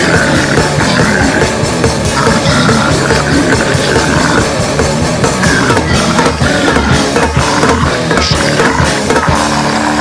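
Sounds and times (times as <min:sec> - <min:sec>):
distorted guitar: 0:00.0 - 0:10.0
rapid drum hits: 0:00.0 - 0:10.0.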